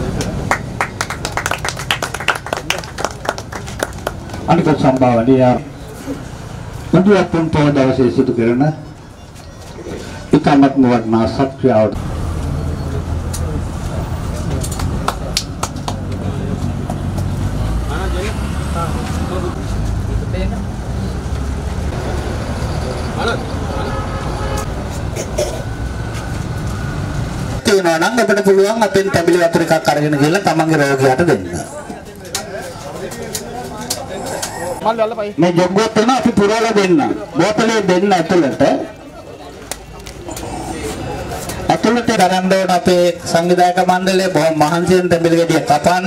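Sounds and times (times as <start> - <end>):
scattered hand clapping: 0.1 - 5.2, 14.6 - 16.2.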